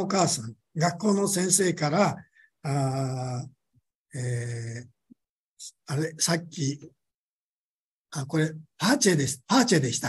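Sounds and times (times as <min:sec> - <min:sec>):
man speaking: 0:00.0 - 0:05.0, 0:05.6 - 0:07.0, 0:08.2 - 0:10.0.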